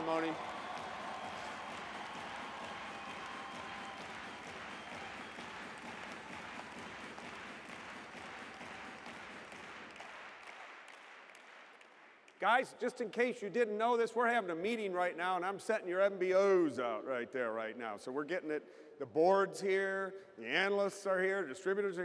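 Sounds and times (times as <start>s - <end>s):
audience applauding: 0.0s - 12.5s.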